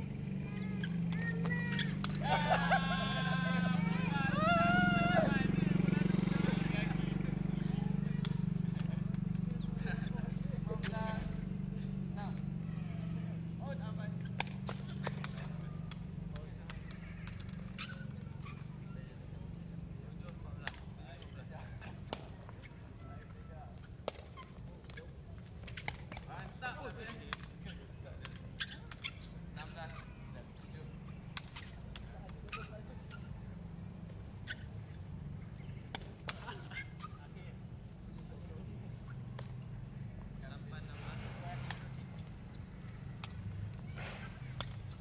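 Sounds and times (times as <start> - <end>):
ball being kicked sharp smacks: 0.6 - 2.3, 7.8 - 9.7, 14.2 - 18.8, 20.6 - 21.1, 22.0 - 22.7, 24.0 - 24.5, 25.6 - 29.5, 31.1 - 33.4, 35.7 - 37.1, 39.1 - 39.7, 41.0 - 45.0.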